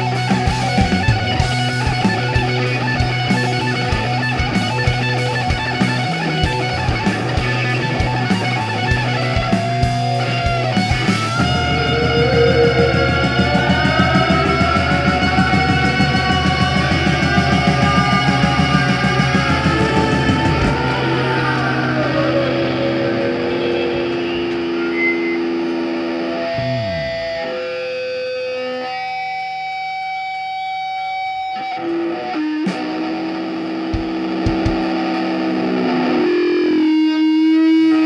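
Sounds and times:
distorted electric guitars: 0.0 - 38.0
driving rock beat: 0.0 - 38.0.

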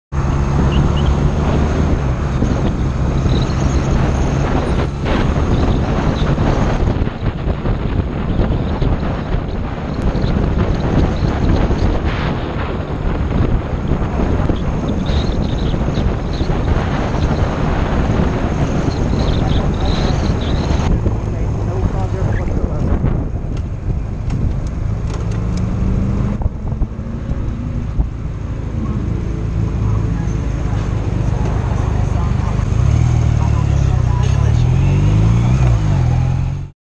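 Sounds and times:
wind noise on microphone: 0.1 - 36.7
motorcycle engine running: 0.4 - 25.5.

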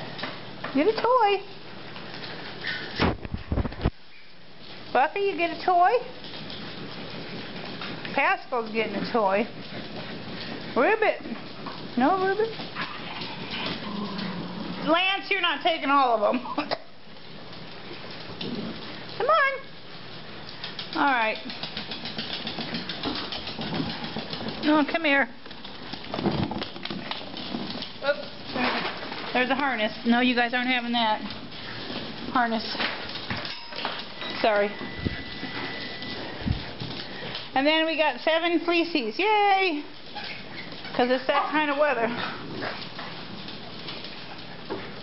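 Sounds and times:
cardboard and plush toys rustling: 17.1 - 45.0
dog claws scrabbling on wooden floor: 20.0 - 34.2.

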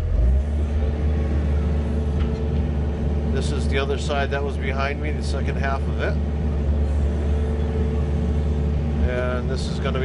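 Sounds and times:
faint motor hum: 0.0 - 10.0
steady low rumble: 0.0 - 10.0.

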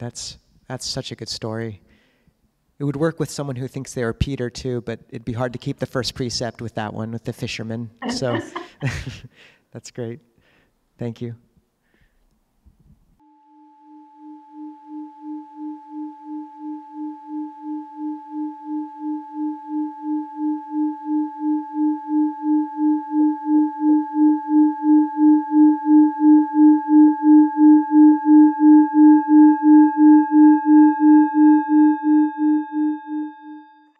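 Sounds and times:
singing bowl rubbed tone: 13.2 - 33.9.

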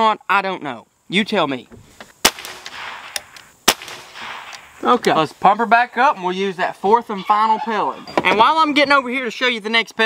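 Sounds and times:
air rifle shot: 2.2 - 4.9.

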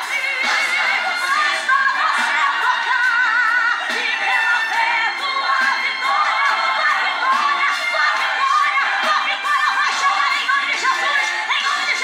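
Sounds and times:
crowd shouting and cheering: 0.0 - 12.0
music: 0.0 - 12.0.

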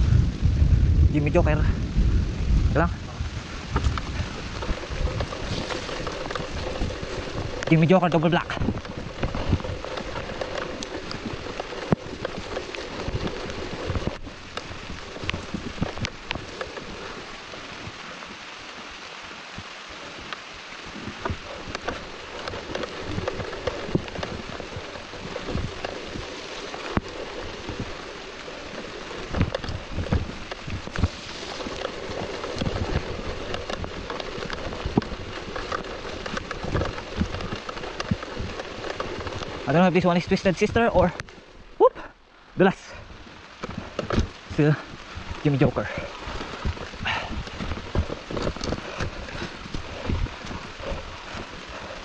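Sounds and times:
bike tyre noise: 0.0 - 52.0
rain hiss: 0.0 - 52.0
bike knocking and rattling: 1.4 - 41.8, 42.6 - 52.0.

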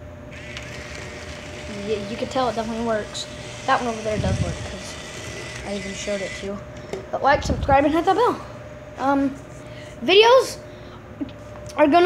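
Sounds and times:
faint steady hum: 0.0 - 12.0
model train whirring: 0.3 - 7.0.

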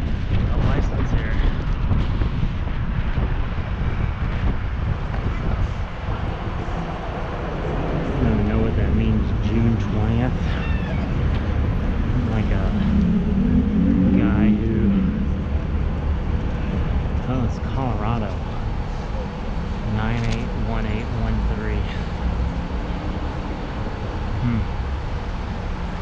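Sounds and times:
city traffic rumble: 0.0 - 26.0
person talking indistinctly: 8.1 - 10.8, 12.0 - 15.2, 17.2 - 18.6, 19.8 - 22.0, 24.4 - 24.7.

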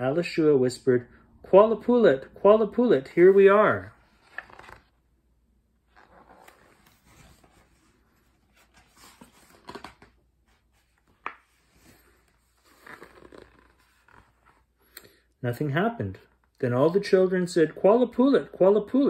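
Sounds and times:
book pages rustling: 3.8 - 5.0, 5.8 - 14.8.

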